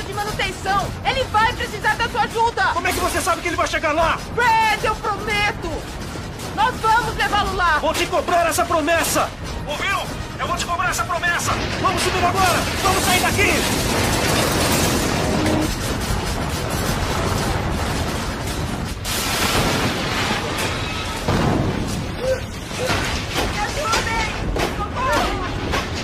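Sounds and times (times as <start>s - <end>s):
rumbling and crashing collapse: 0.0s - 26.0s
falling debris: 1.8s - 26.0s.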